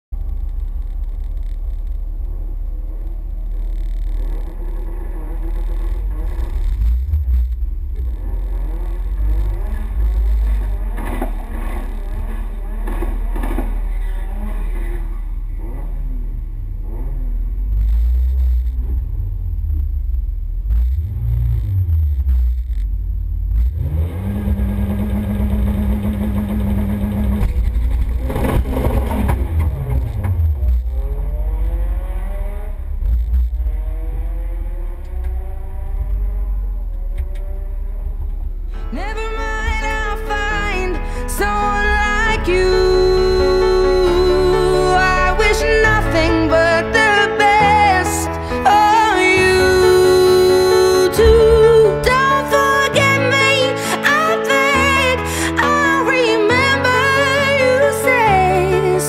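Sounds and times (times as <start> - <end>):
car engine revving: 0.2 - 59.0.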